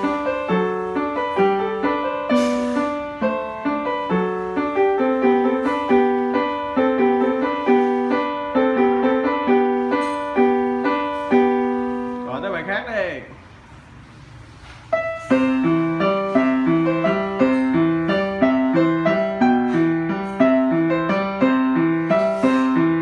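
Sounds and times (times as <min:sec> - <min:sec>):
upright piano melody: 0:00.0 - 0:23.0.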